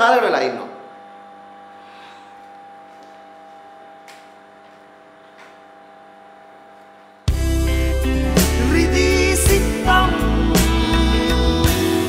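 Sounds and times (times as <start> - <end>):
electrical hum: 0.0 - 8.1.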